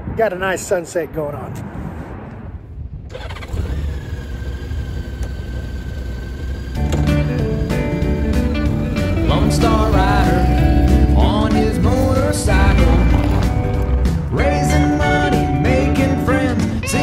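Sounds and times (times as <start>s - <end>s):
motorcycle engine idling: 3.2s - 12.1s
intro music: 6.8s - 17.0s
person singing: 8.6s - 13.6s, 14.3s - 17.0s.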